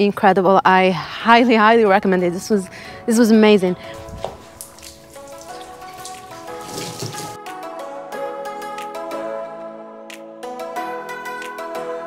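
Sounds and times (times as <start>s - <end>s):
background music: 0.5s - 12.0s
water from hose spattering: 3.8s - 7.4s.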